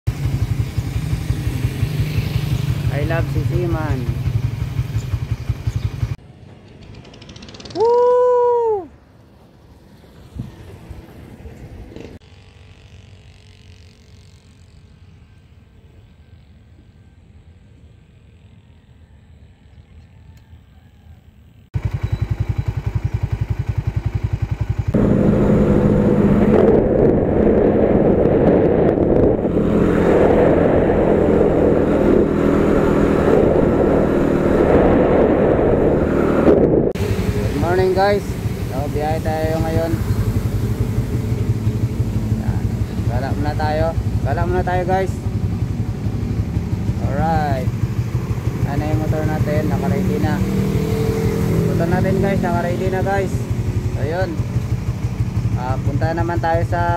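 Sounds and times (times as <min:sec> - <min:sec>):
motorcycle engine running: 0:00.1 - 0:08.0, 0:21.5 - 0:56.9
person shouting: 0:07.8 - 0:08.9
wind noise: 0:24.9 - 0:54.4.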